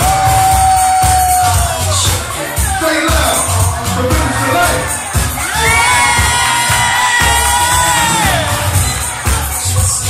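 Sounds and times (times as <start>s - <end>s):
dance music with thumping bass: 0.0s - 10.0s.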